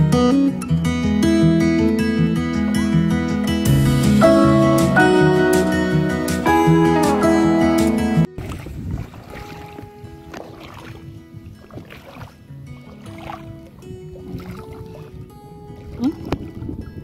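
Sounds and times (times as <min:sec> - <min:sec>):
loud guitar tune: 0:00.0 - 0:08.4
soft background music: 0:01.4 - 0:17.0
water sloshing and splashing: 0:08.2 - 0:17.0.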